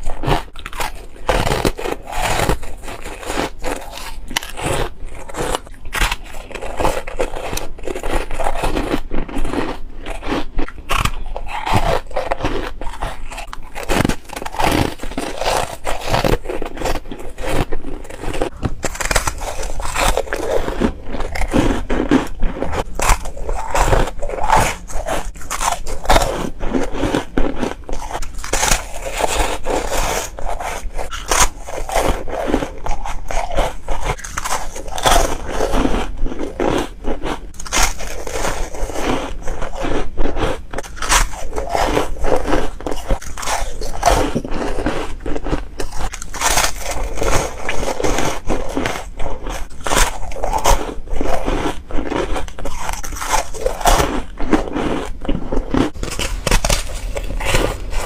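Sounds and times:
crunchy ice being chewed: 0:00.0 - 0:58.0.

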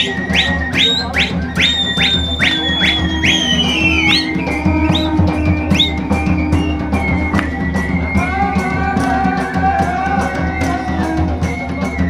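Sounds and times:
drum beat: 0:00.0 - 0:12.0
shrill flute-like melody: 0:00.0 - 0:12.0.

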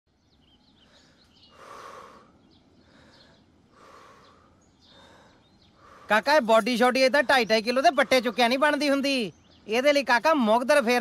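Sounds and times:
small birds chirping: 0:00.1 - 0:11.0.

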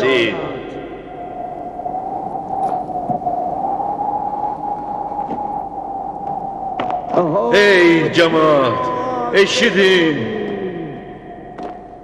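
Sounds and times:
long held pure tone: 0:00.0 - 0:12.0.

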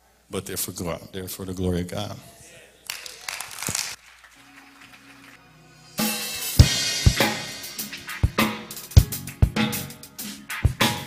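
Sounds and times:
cymbals: 0:05.7 - 0:11.0
snare drum: 0:06.0 - 0:11.0
bass drum: 0:06.6 - 0:09.8.

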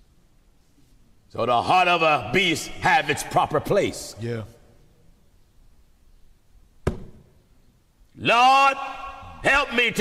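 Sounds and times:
sharp knock: 0:06.8 - 0:07.3.

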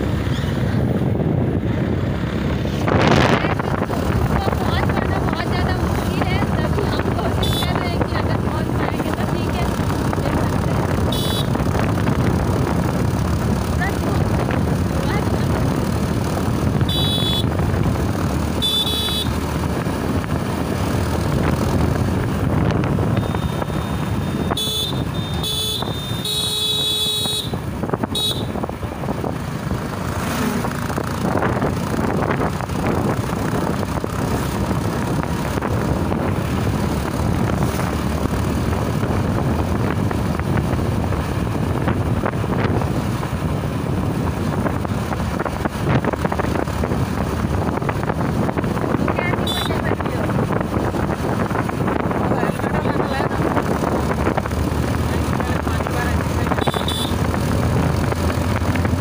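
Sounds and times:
wind rushing over microphone: 0:00.0 - 0:18.6, 0:19.4 - 0:26.2, 0:27.2 - 0:59.0
motorcycle running: 0:00.0 - 0:59.0
vehicle horn honking: 0:07.4 - 0:07.8, 0:11.1 - 0:11.6, 0:16.9 - 0:17.5, 0:18.6 - 0:19.4, 0:23.1 - 0:28.6, 0:49.4 - 0:49.8, 0:56.5 - 0:57.2.

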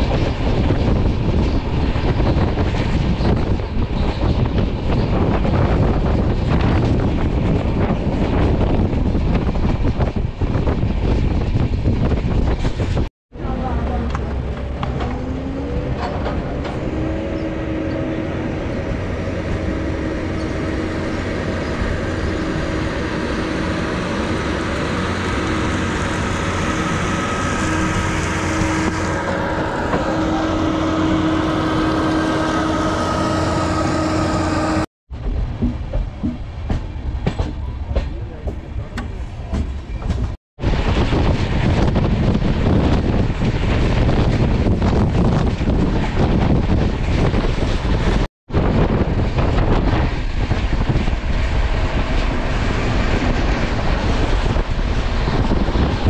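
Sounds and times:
rushing wind and rail noise: 0:00.0 - 0:56.0
steady train hum: 0:00.0 - 0:56.0.

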